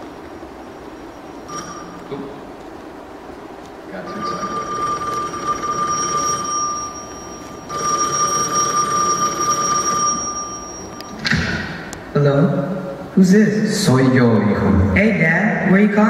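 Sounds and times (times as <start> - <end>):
telephone ringing: 1.5 - 2.1, 4.0 - 11.2.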